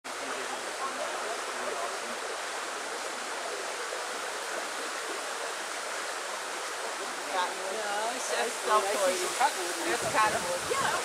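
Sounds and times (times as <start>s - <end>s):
running water rushing: 0.0s - 11.0s.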